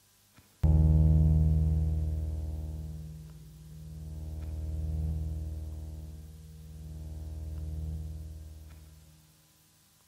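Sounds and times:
low instrumental chord ringing: 0.6s - 9.2s.

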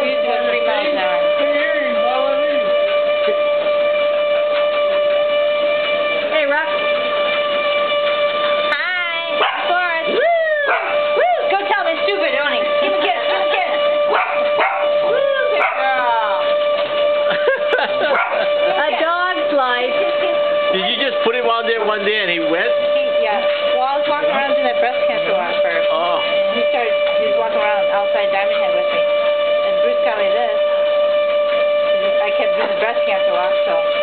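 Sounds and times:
treadmill motor whine: 0.0s - 34.0s
dog howling and yipping: 9.4s - 11.4s, 14.1s - 15.9s, 18.0s - 18.5s.

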